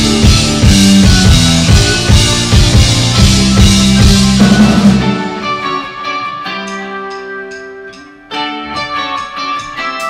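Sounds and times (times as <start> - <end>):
electric guitar picked notes: 0.0 - 10.0.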